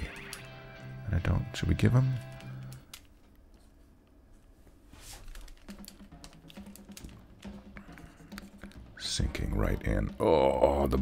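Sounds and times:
computer keyboard keys clicking: 5.3 - 7.6.

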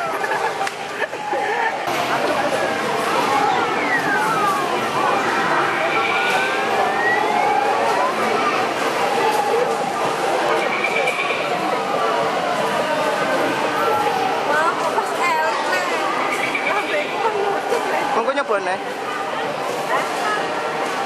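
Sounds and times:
people talking: 0.0 - 21.0.

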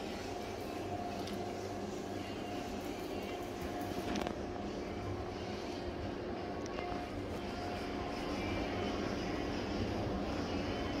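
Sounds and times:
faint steady whine: 0.0 - 11.0
mechanical hum with low rumble: 0.0 - 11.0.

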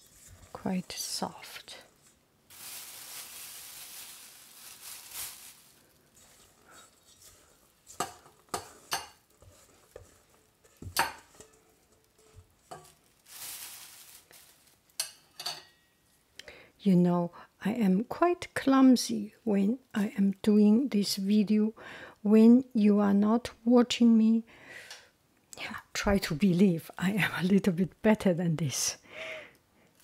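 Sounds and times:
plastic bag rustling: 0.0 - 15.1
spatula scraping dough from bowl: 6.2 - 11.6.

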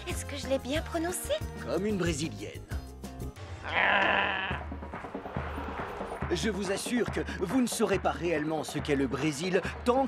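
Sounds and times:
cartoon character bleating voice: 3.6 - 4.6.

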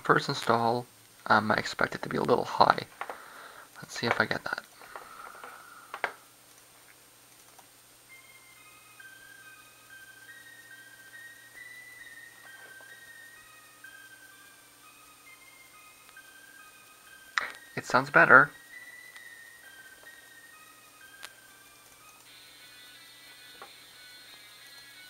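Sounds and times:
quiet melody of high notes: 8.0 - 25.0.

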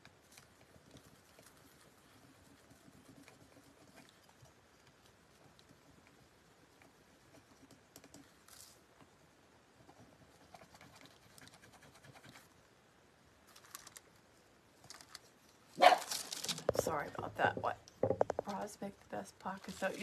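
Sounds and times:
faint scratching: 0.0 - 12.6, 13.5 - 20.0.

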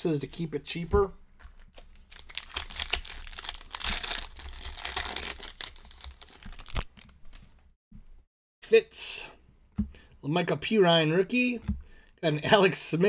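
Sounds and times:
foil wrapper tearing and crinkling: 1.7 - 7.6.

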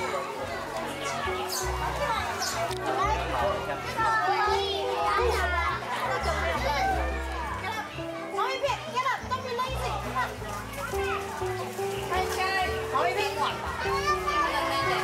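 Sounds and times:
children chattering and calling out: 0.0 - 15.0.

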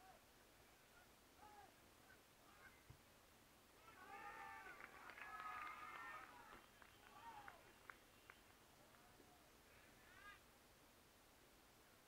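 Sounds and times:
distant shouting voices: 0.0 - 2.8, 3.8 - 8.3.

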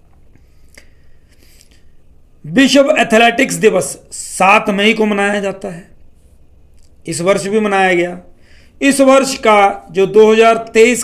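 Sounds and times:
soft hiss: 0.0 - 10.9
low room hum: 0.0 - 11.0.

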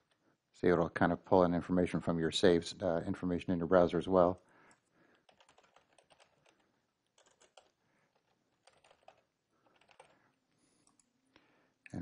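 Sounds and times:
keyboard typing: 4.7 - 11.1.

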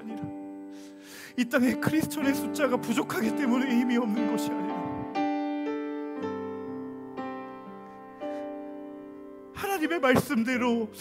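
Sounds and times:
soft piano chords: 0.0 - 11.0.

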